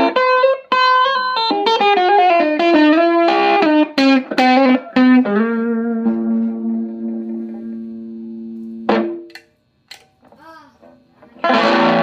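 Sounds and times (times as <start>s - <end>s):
electric guitar notes through tube amp: 0.0s - 9.4s, 11.2s - 12.0s.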